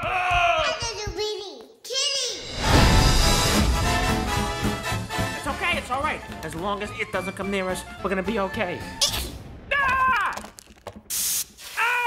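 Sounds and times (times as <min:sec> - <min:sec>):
short hiss: 0:11.0 - 0:12.0.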